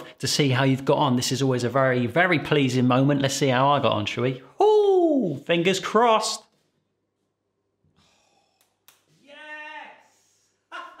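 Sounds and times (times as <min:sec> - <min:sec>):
man saying ooh of delight: 0:04.6 - 0:05.4.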